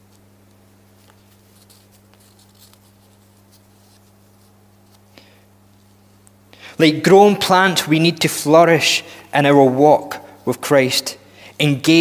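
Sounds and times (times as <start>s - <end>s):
low electrical hum: 0.0s - 12.0s
light rustle: 0.1s - 5.1s.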